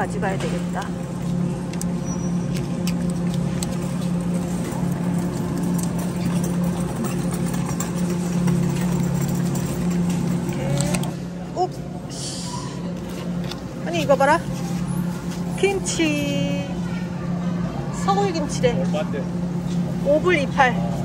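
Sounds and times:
refrigerated display case humming: 0.0s - 21.0s.

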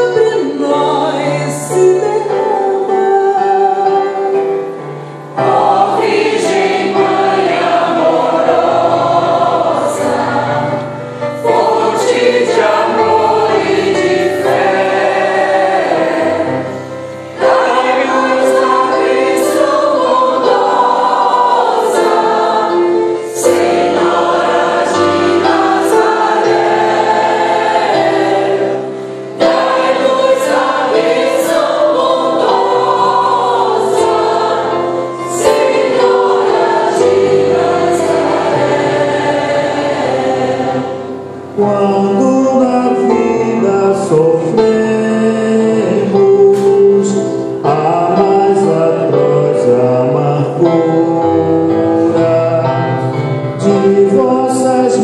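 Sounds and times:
mixed choir singing a hymn: 0.0s - 55.0s.

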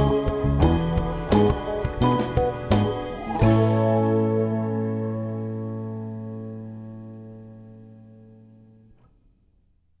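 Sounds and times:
guitar chord ringing out: 2.9s - 8.8s.

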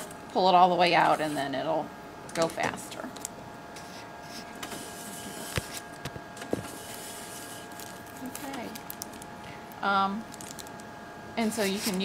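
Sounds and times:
film transport motor whine: 0.0s - 12.0s.

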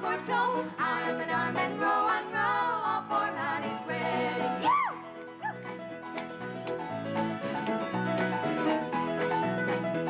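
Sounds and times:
folk band playing: 5.0s - 10.0s.

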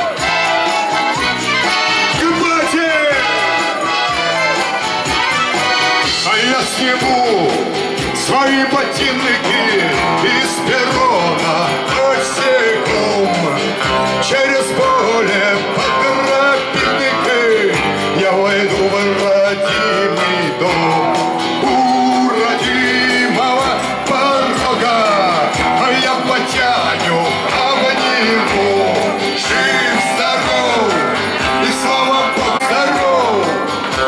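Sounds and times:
man singing: 0.0s - 34.0s
strummed acoustic guitar: 0.0s - 34.0s.

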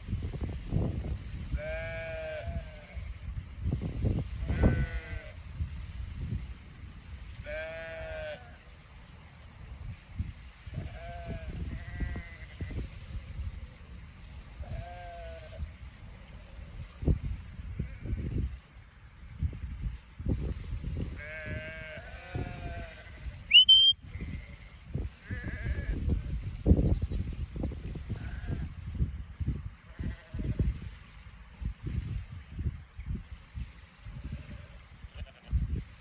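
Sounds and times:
wind rumble on microphone: 0.0s - 36.0s.

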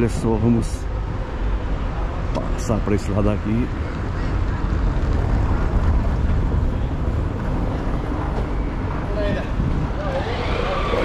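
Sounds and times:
steady low rumble: 0.0s - 10.1s.

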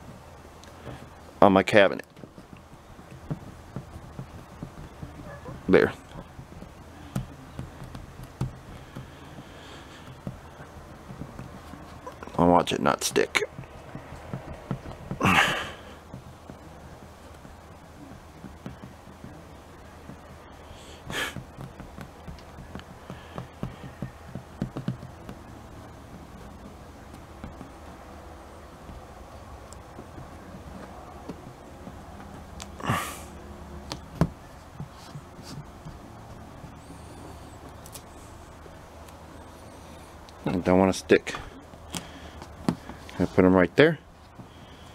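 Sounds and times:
faint low hum: 0.0s - 44.9s
fingers tapping sticker on door: 2.1s - 12.4s, 13.1s - 15.2s, 15.8s - 32.8s.

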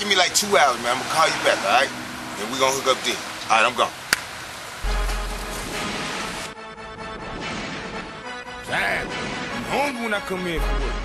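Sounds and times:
hip-hop beat with deep bass: 4.8s - 6.4s, 8.1s - 11.0s.

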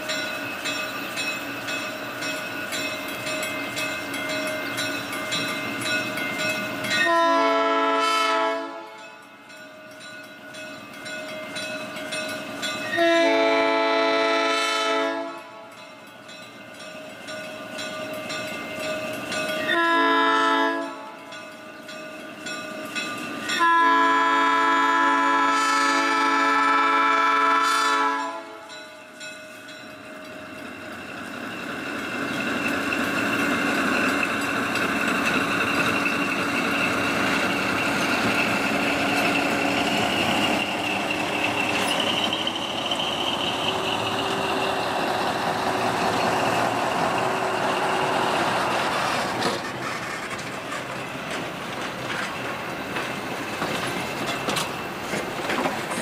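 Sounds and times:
locomotive engine and wheels: 0.0s - 56.0s
locomotive horn blasts: 7.0s - 9.0s, 12.9s - 15.6s, 19.7s - 21.1s, 23.6s - 28.7s.

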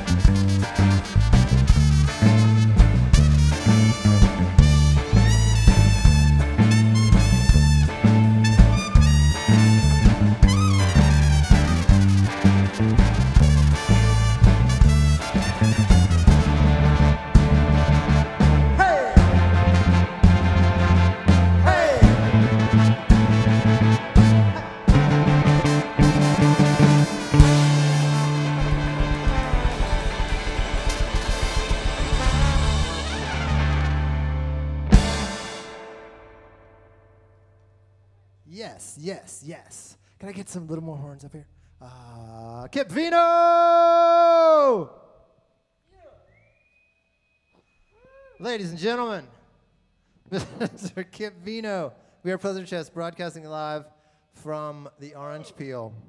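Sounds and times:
live band playing ska tune: 0.0s - 36.5s
trumpet: 0.0s - 37.3s.

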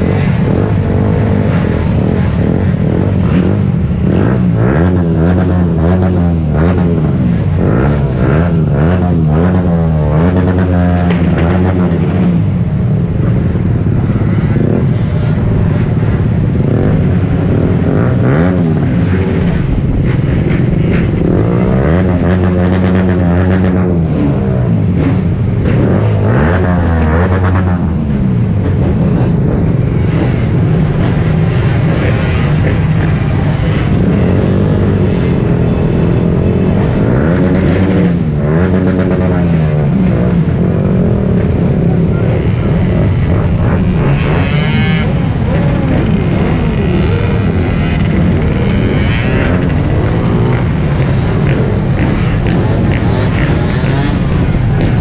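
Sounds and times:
scooter and motorcycle engines revving: 0.0s - 55.0s.

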